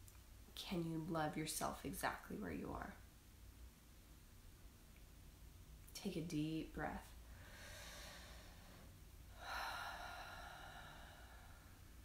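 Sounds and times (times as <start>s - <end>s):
woman breathing deeply: 7.2s - 12.0s.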